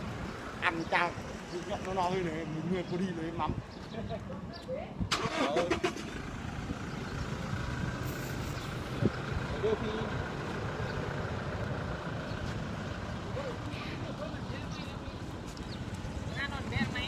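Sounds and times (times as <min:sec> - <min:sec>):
engine running at low revs: 0:05.7 - 0:14.5.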